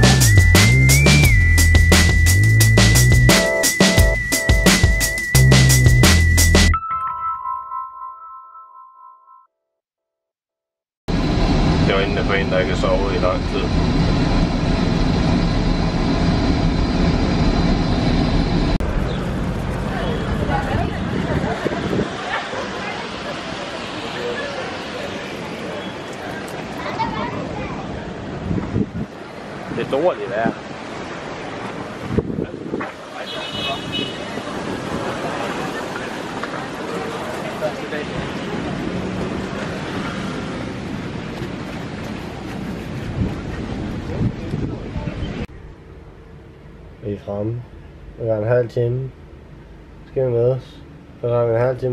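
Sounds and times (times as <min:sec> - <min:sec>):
wind buffeting microphone: 0:11.1 - 0:22.8, 0:26.4 - 0:33.2, 0:33.8 - 0:45.6
airliner cabin noise: 0:11.1 - 0:28.5, 0:31.6 - 0:45.5
faint voices: 0:19.7 - 0:28.4, 0:32.3 - 0:40.4.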